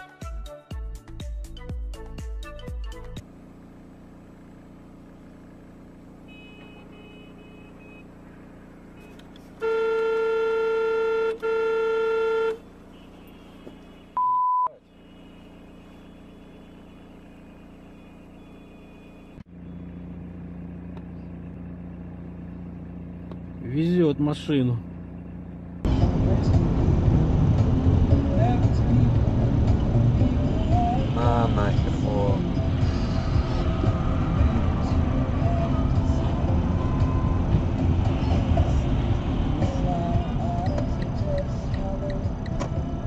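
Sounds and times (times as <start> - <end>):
car engine and road hum: 3.0 - 43.0
car horn: 6.1 - 8.2, 8.9 - 19.9
short high beep: 14.2 - 14.8.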